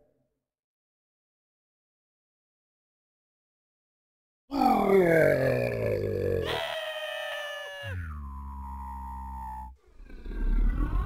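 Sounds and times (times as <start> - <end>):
cartoon characters screaming: 6.3 - 8.2.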